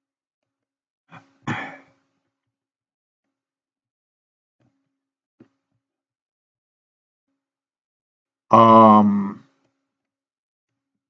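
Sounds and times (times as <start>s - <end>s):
man clearing his throat: 1.2s - 1.9s.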